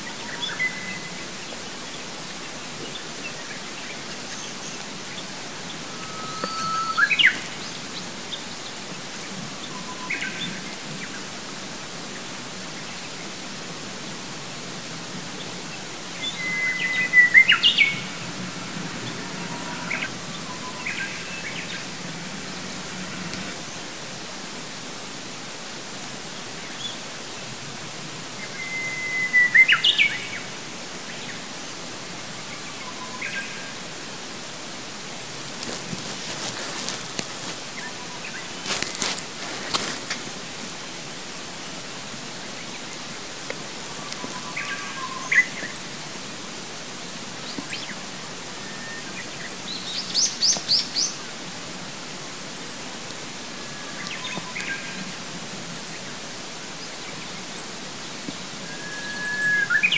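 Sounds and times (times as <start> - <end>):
songbird singing: 0.0 - 11.4, 14.0 - 24.6, 28.3 - 34.2, 35.1 - 46.0, 47.4 - 51.6, 52.4 - 59.9
steady outdoor hiss: 0.0 - 59.9
faint short bird notes: 5.6 - 7.8.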